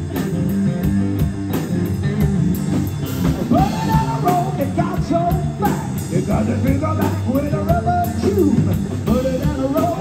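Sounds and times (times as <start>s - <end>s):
electric bass: 0.0s - 10.0s
electric guitar: 0.0s - 10.0s
man singing: 3.4s - 10.0s.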